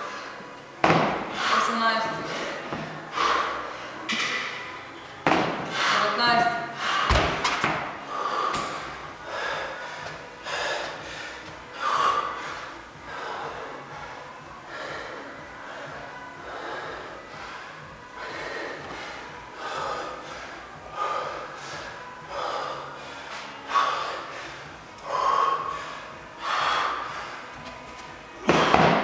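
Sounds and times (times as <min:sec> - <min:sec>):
man breathing hard: 0:01.2 - 0:04.1, 0:05.6 - 0:29.0.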